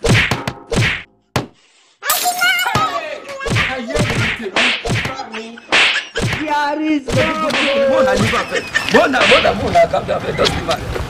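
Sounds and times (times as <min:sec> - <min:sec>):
punches landing: 0:00.0 - 0:01.6, 0:02.7 - 0:06.5.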